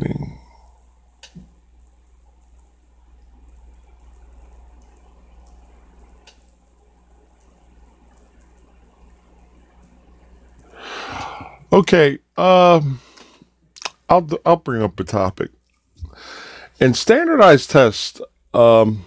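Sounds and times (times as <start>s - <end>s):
steady low hum: 0.0s - 19.0s
light clicks: 0.4s - 10.0s.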